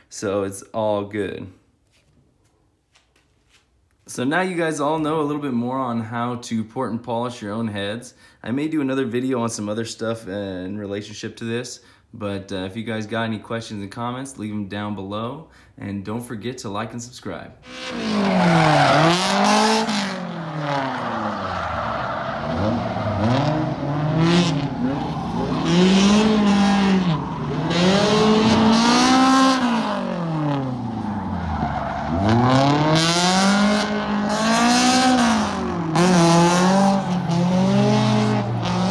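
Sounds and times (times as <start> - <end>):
car engine revving: 17.6 - 38.9.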